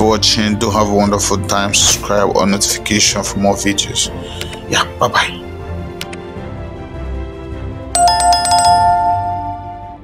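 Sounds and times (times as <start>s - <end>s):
small bell ringing rapidly: 8.0s - 9.8s.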